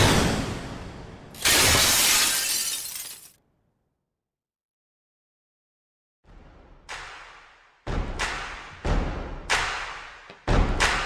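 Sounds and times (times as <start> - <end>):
glass shattering: 1.4 - 3.4.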